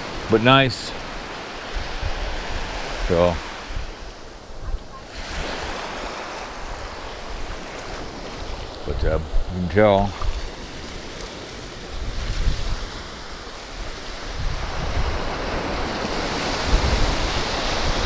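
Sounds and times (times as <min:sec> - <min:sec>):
small waves on sandy beach: 0:00.0 - 0:18.0
wind rumbling on microphone: 0:01.0 - 0:18.0.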